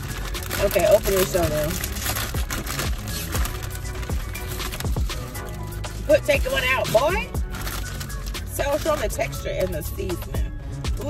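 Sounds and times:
background music with sustained tones: 0.0 - 11.0.

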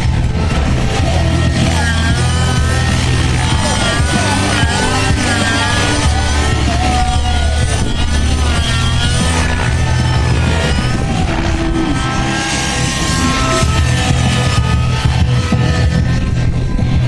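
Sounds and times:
model helicopter engine and rotor: 0.0 - 17.0
music: 0.0 - 17.0.

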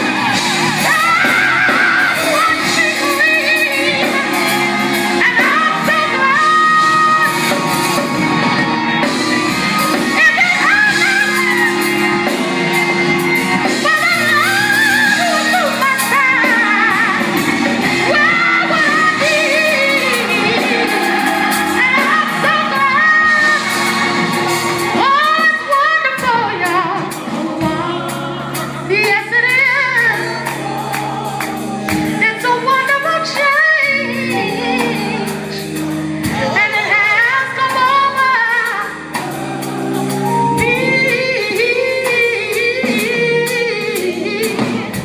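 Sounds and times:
instrumental accompaniment: 0.0 - 45.0
woman singing gospel song: 0.0 - 45.0.

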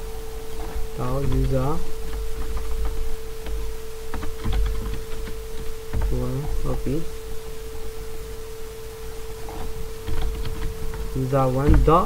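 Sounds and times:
steady whine tone: 0.0 - 12.0.

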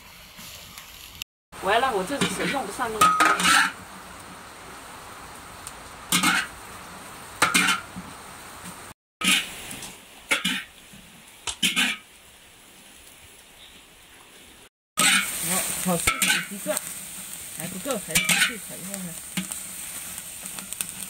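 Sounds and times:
peppers sizzling in a wok: 0.0 - 21.0
metal spatula scraping wok: 2.0 - 3.8, 6.1 - 6.5, 7.4 - 8.0, 9.2 - 9.6, 11.6 - 12.0, 15.0 - 21.0.

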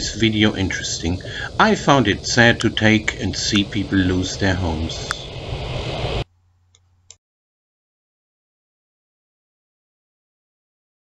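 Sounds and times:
faint low hum: 0.0 - 7.2
open-air background hiss: 0.0 - 7.2.

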